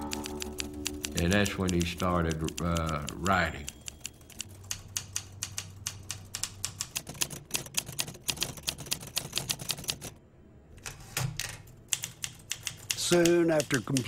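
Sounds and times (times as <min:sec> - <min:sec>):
typewriter keys clicking: 0:00.0 - 0:10.1, 0:11.9 - 0:14.0.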